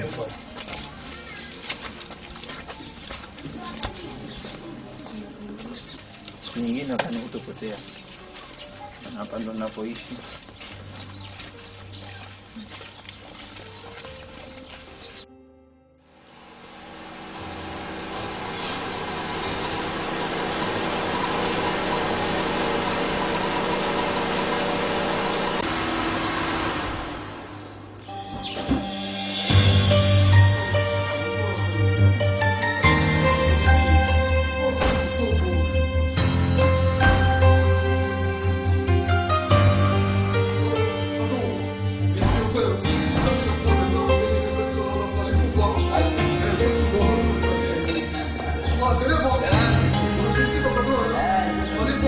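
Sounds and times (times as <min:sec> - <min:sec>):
birds calling: 0:00.0 - 0:15.5, 0:27.4 - 0:31.7
droning hum: 0:16.2 - 0:28.0.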